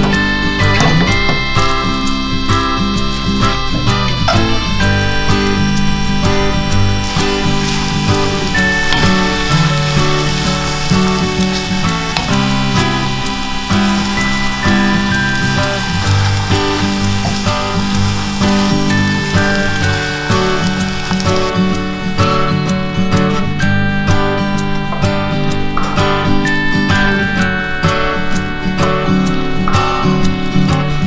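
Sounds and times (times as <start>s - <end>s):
dough sizzling in a saucepan: 0.0s - 23.3s
background music: 0.0s - 31.0s.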